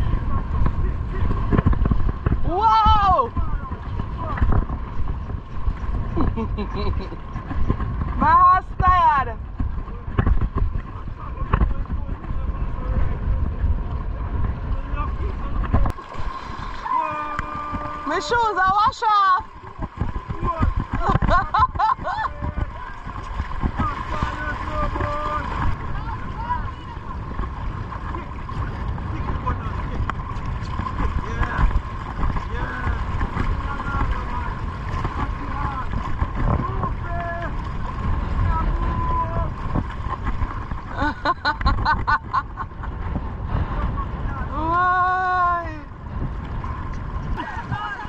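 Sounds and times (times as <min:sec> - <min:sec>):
horses splashing through water: 0:00.0 - 0:48.0
wind buffeting microphone: 0:00.0 - 0:48.0
faint voices: 0:09.6 - 0:21.1.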